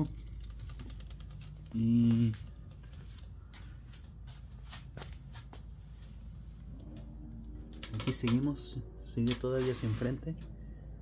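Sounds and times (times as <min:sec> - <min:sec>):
scattered clicks: 0:00.0 - 0:03.3, 0:07.6 - 0:09.8
cricket chirping: 0:00.0 - 0:11.0
steady low hum: 0:00.0 - 0:11.0.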